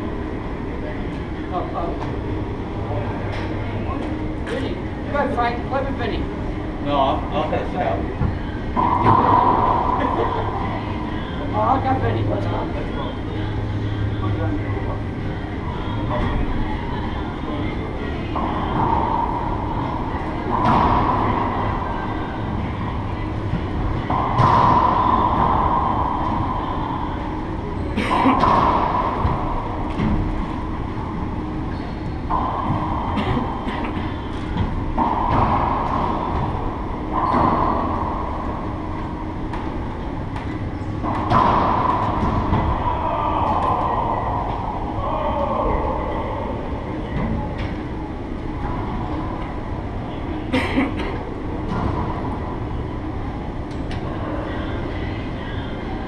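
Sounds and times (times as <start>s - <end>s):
steady low rumble: 0.0s - 56.0s
racquet hitting ball: 24.0s - 27.3s.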